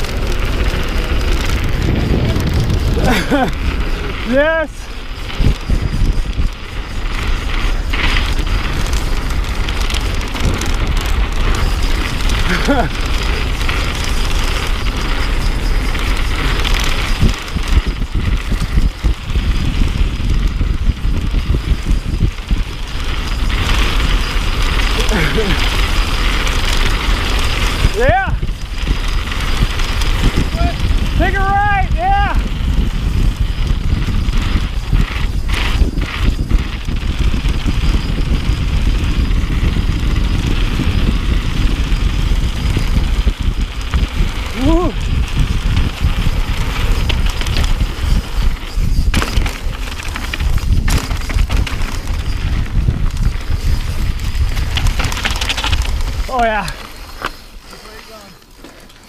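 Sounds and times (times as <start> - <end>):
rider whooping: 0.0 - 6.2, 6.8 - 17.2, 23.7 - 37.0, 41.6 - 50.6
wind rushing over microphone: 0.0 - 58.6
bike rattling: 0.0 - 59.0
tyres rolling on rock: 0.0 - 59.0.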